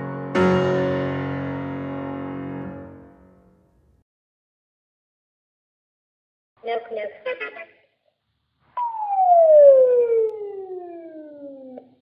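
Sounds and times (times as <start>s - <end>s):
falling whistle tone: 8.8s - 11.9s.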